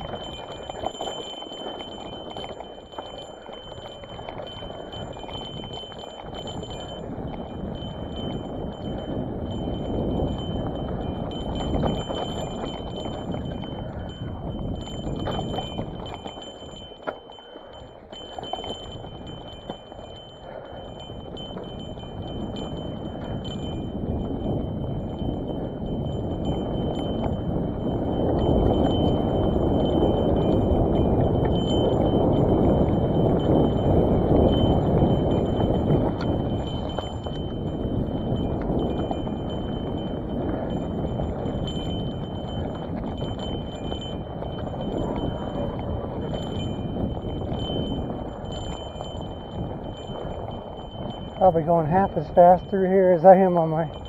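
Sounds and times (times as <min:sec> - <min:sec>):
bike rattling and clinking: 0:00.0 - 0:54.0.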